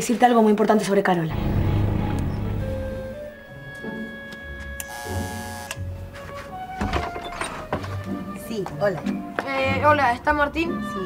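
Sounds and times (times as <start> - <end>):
soft background music: 1.3 - 11.0
electric doorbell buzzer: 3.3 - 5.9.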